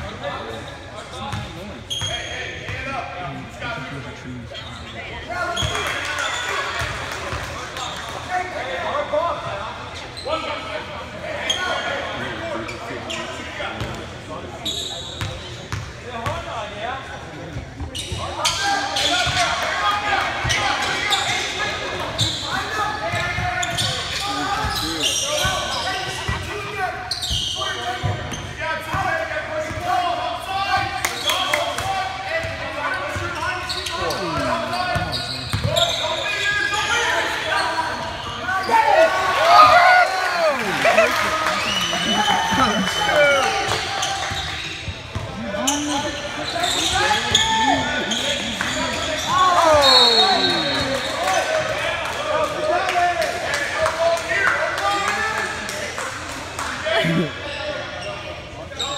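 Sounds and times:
echoing chatter of voices: 0.0s - 58.9s.

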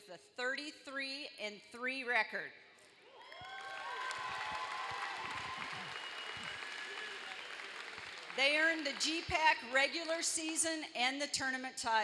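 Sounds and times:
crowd applauding: 3.2s - 9.4s.

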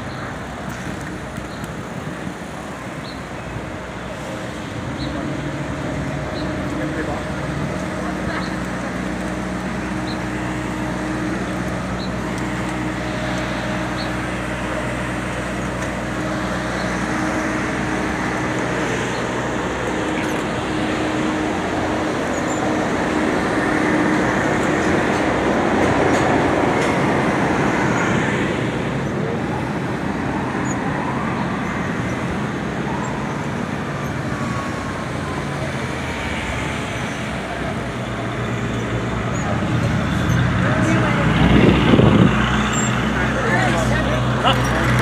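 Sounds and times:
traffic noise: 0.0s - 45.0s.

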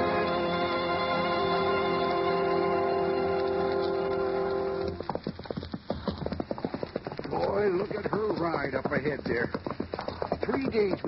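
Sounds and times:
sustained music chord: 0.0s - 5.0s
horse hoofbeats clip-clop: 0.0s - 11.0s.

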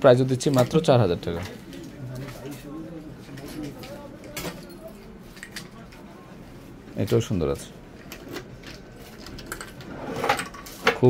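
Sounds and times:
man speaking: 0.0s - 6.4s, 7.0s - 7.8s.

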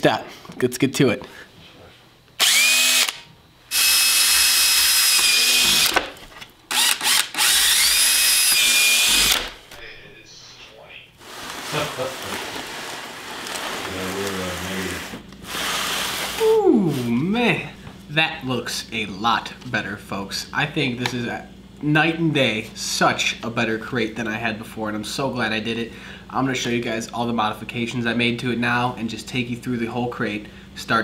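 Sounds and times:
cordless drill motor whining: 2.4s - 9.6s.

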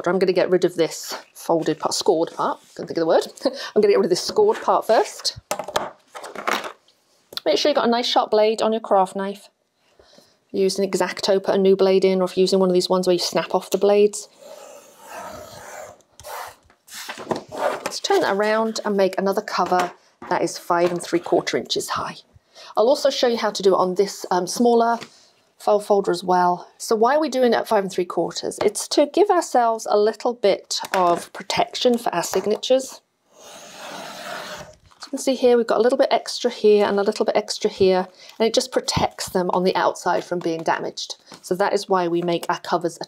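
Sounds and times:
paper scraping against card: 33.4s - 34.8s.

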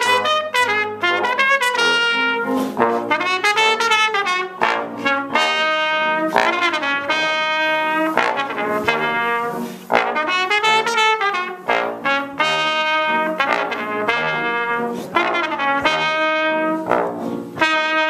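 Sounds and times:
trumpet and trombone duet: 0.0s - 18.0s.

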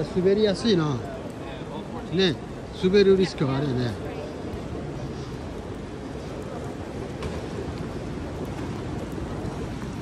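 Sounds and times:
light rain: 0.0s - 10.0s.

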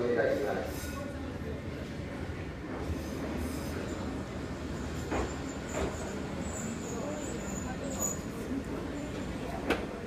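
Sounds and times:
low rumble of train wheels: 0.0s - 10.0s
faint high wheel squeal: 3.4s - 9.6s.

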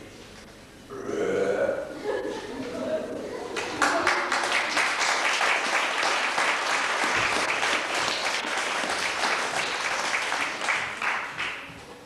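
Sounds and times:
man burping: 0.9s - 1.9s.

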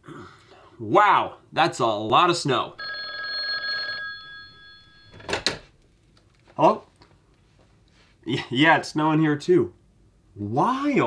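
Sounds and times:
telephone bell ringing: 2.8s - 5.3s.

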